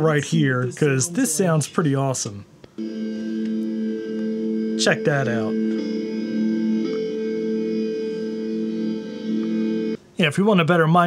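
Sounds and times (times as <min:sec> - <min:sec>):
echoing electronic drone: 0:02.8 - 0:10.0.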